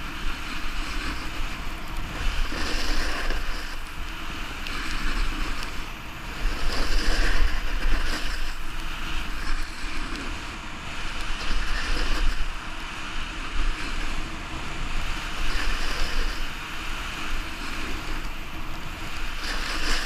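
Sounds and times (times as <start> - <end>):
snowboard scraping over snow: 0.0 - 20.0
wind rumbling on microphone: 0.0 - 20.0.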